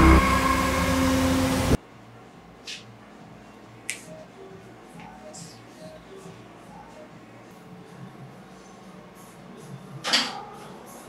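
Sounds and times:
low drone music: 0:00.0 - 0:01.8.

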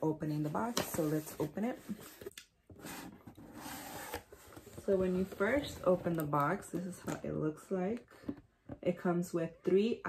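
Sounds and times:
cardboard rubbing and scraping: 0:02.8 - 0:06.0.

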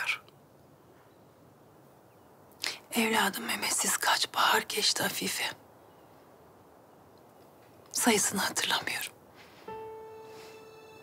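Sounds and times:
woman speaking: 0:02.7 - 0:05.6, 0:08.0 - 0:09.1
sharp intake of breath: 0:09.4 - 0:10.8.

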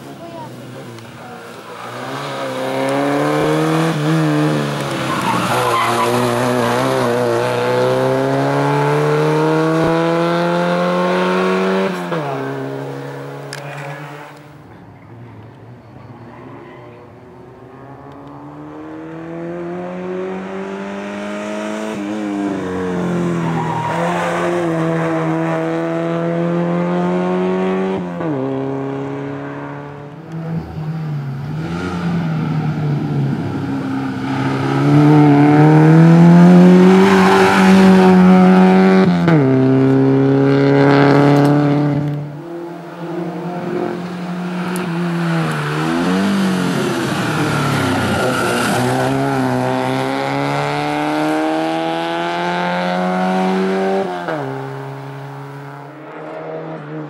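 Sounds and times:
race car engine accelerating: 0:01.7 - 0:14.5, 0:17.8 - 0:57.0.

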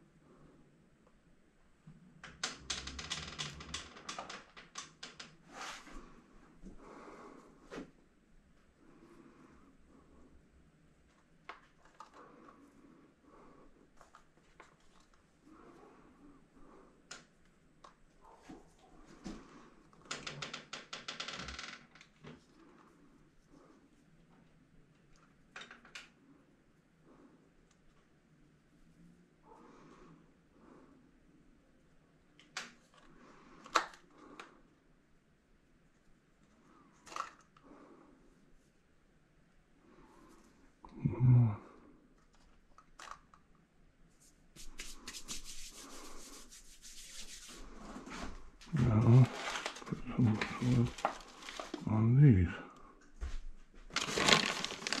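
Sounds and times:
small clicks and rustles: 0:02.2 - 0:05.4, 0:11.0 - 0:12.7, 0:13.9 - 0:15.5, 0:23.6 - 0:26.3, 0:42.1 - 0:43.7, 0:48.0 - 0:51.9, 0:53.6 - 0:55.0.

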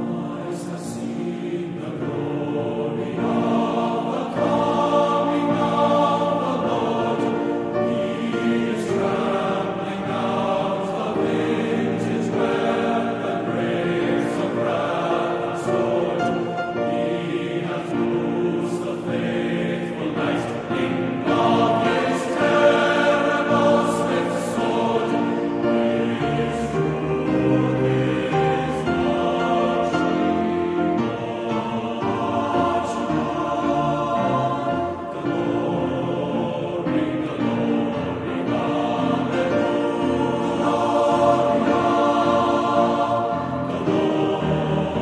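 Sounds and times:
classical ensemble sustained chords: 0:00.0 - 0:45.0.

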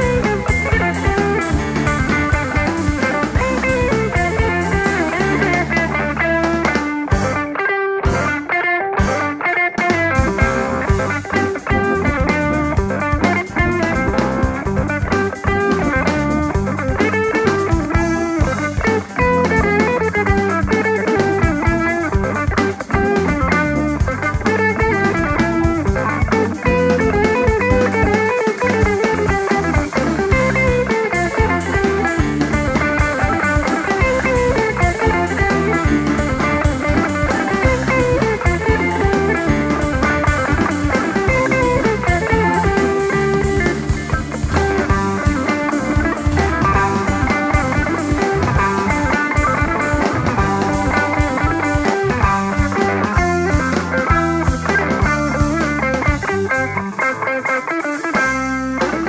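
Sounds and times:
bass guitar: 0:00.0 - 0:59.0
drum kit: 0:00.0 - 0:59.0
electric guitar: 0:00.0 - 0:59.0.

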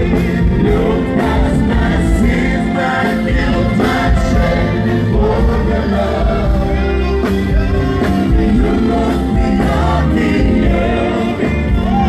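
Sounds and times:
live gospel worship music: 0:00.0 - 0:12.0.

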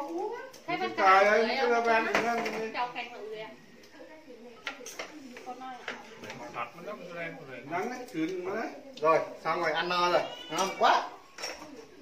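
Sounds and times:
domestic animal crying: 0:10.1 - 0:11.2.

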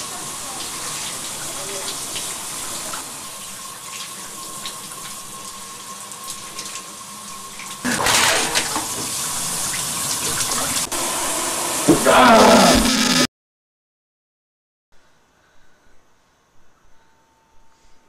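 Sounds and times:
shower running: 0:00.0 - 0:13.2.

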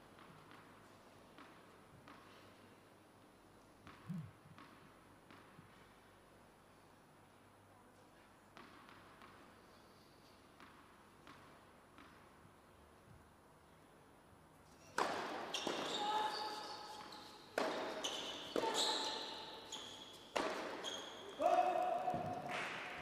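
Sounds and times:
tennis ball bouncing on court: 0:00.2 - 0:02.4, 0:03.8 - 0:05.9, 0:08.5 - 0:09.5, 0:10.6 - 0:12.4, 0:14.9 - 0:16.4, 0:17.0 - 0:21.1, 0:22.0 - 0:22.9.

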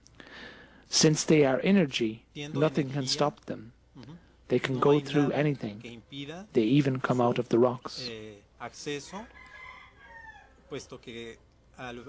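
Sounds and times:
rooster crowing faintly: 0:09.0 - 0:11.1.

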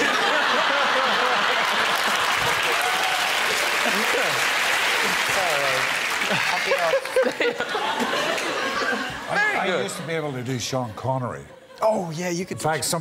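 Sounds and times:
audience applauding: 0:00.0 - 0:09.0
people laughing: 0:00.0 - 0:13.0.

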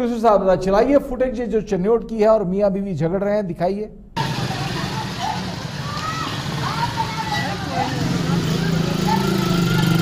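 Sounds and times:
motorcycle engines running: 0:04.2 - 0:10.0
people calling out: 0:04.6 - 0:10.0.

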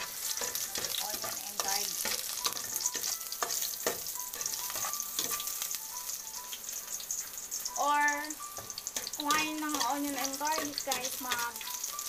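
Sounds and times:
spoon scraping a metal pot: 0:00.0 - 0:05.6
garlic and onion sizzling in oil: 0:00.0 - 0:12.0.

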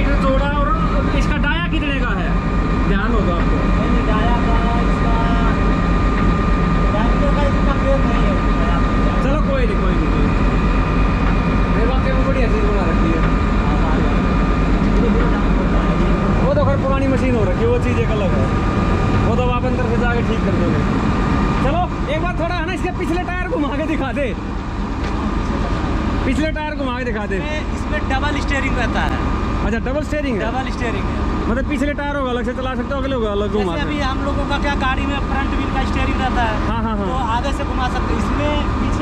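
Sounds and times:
diesel engine idling: 0:00.0 - 0:39.0.

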